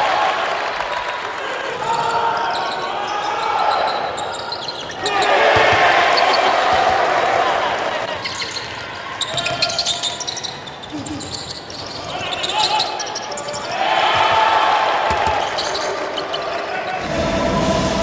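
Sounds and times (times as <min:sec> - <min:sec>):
crowd noise and voices: 0:00.0 - 0:18.0
basketball bouncing on wooden court: 0:04.3 - 0:07.6, 0:08.2 - 0:16.5.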